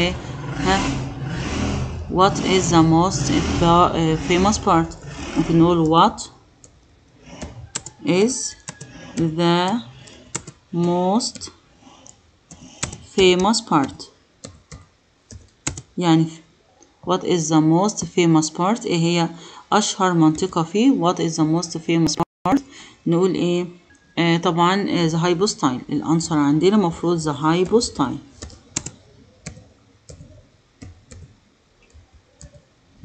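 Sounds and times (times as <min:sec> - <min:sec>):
computer keyboard typing: 0:05.4 - 0:15.9, 0:27.4 - 0:32.7
computer keyboard key clicks: 0:28.4 - 0:31.3.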